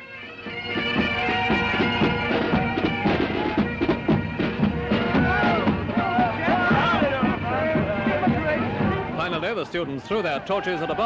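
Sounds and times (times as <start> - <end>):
pipe band playing: 0.0 - 11.0
drum beat: 0.4 - 9.9
voices shouting: 0.9 - 11.0.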